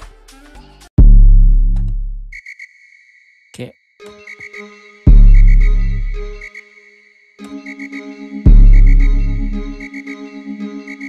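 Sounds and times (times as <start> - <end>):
deep bass note: 1.0 - 2.3, 5.1 - 6.4, 8.5 - 9.8
electronic dance beat: 5.1 - 6.4, 8.5 - 9.9.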